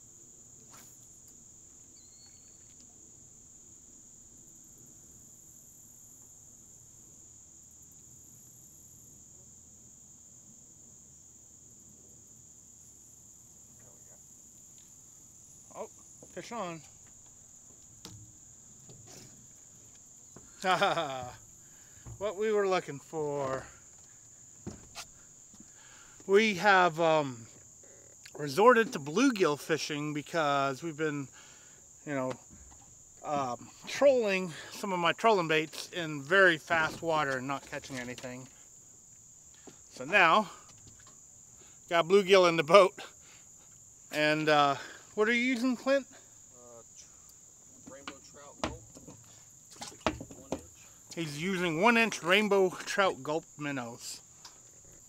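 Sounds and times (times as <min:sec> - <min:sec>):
high-pitched insect chorus: 0:00.0 - 0:55.0.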